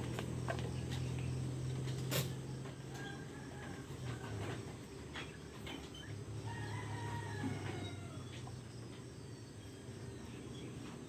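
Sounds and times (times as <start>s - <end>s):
rooster crowing: 2.8s - 4.6s, 6.4s - 8.5s.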